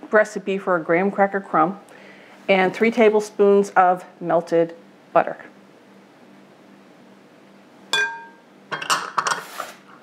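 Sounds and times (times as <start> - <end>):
glass clinking on glass: 7.9 - 9.3
dishes clattering: 8.0 - 9.5.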